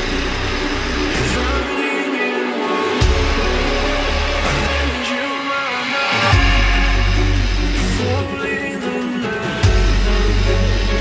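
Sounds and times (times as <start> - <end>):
bass line: 0.0 - 1.8, 3.0 - 5.0, 6.3 - 8.4, 9.6 - 11.0
guitar: 0.0 - 11.0.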